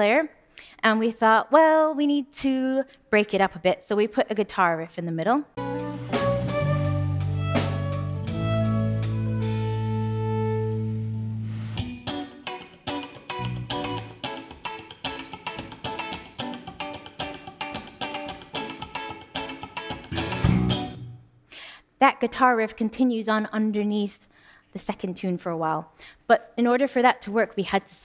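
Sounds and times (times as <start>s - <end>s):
drums: 5.6s - 10.4s, 19.8s - 21.0s
fast guitar riff: 5.6s - 11.2s, 11.8s - 21.2s
held chords over bass: 5.6s - 12.0s, 20.1s - 21.1s.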